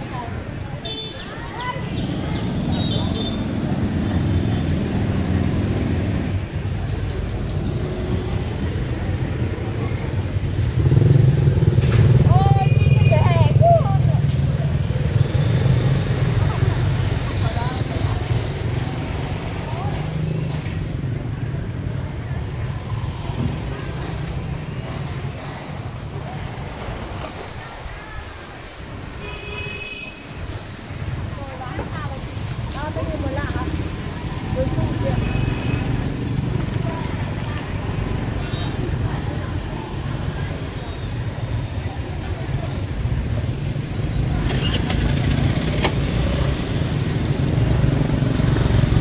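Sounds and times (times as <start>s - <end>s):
people talking: 0.0s - 5.4s, 12.1s - 29.0s, 30.8s - 45.2s
motorbike engines running: 0.0s - 29.4s, 30.2s - 49.0s.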